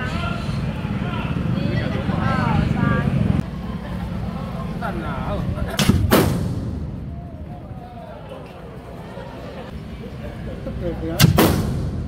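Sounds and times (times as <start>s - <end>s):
loud firework blasts: 5.8s - 7.1s, 11.2s - 12.0s.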